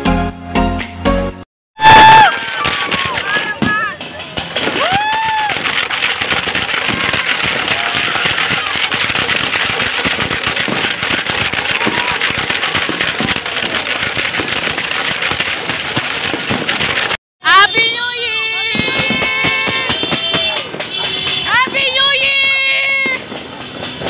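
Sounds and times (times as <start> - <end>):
fireworks crackling and banging: 1.8 - 24.0.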